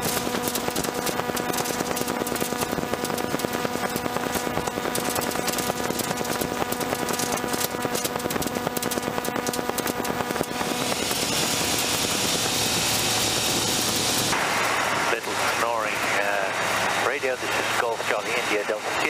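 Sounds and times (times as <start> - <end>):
rapid rattles and clicks: 0.0 - 14.4
light aircraft engine and propeller: 0.0 - 19.0.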